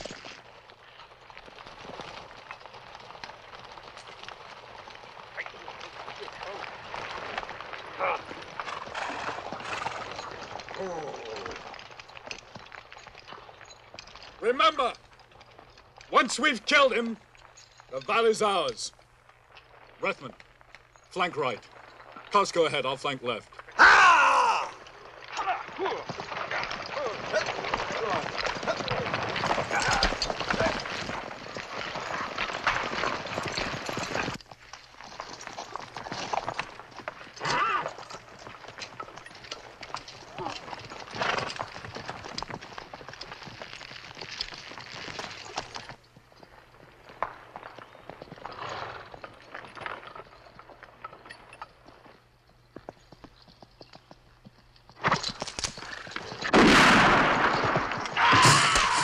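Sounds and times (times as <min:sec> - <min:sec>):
horse hoofbeats on forest ground: 0:00.0 - 0:59.0.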